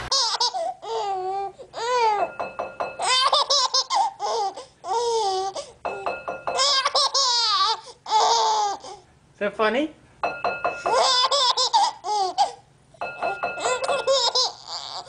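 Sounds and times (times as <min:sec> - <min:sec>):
baby laughing: 0:00.1 - 0:02.3, 0:03.0 - 0:05.7, 0:06.6 - 0:09.0, 0:10.8 - 0:12.6, 0:13.3 - 0:15.0.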